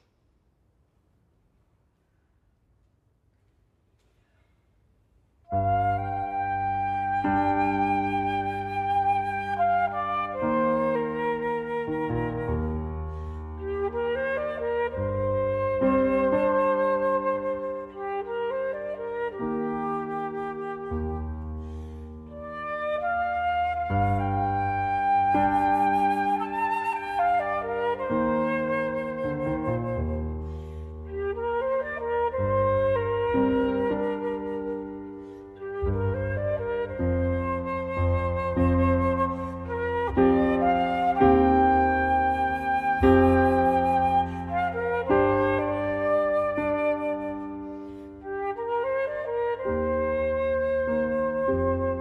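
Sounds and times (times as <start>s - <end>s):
flute playing with vibrato: 5.4s - 52.0s
low piano chords: 5.5s - 52.0s.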